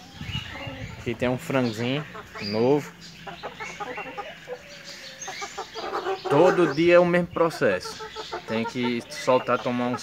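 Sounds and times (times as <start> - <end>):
chickens clucking: 0.0 - 10.0.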